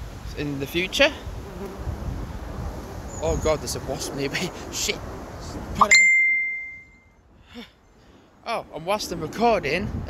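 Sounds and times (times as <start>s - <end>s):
high notification ding: 5.8s - 7.1s.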